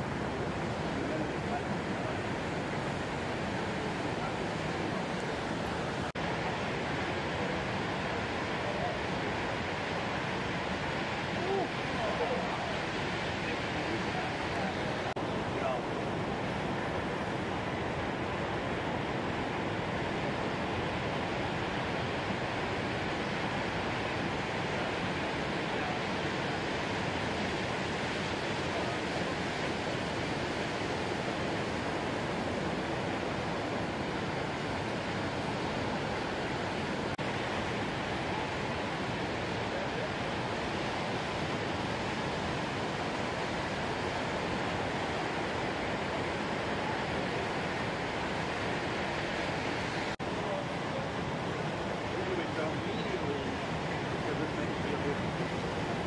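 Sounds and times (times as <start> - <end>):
ocean surf breaking: 0.0 - 56.0.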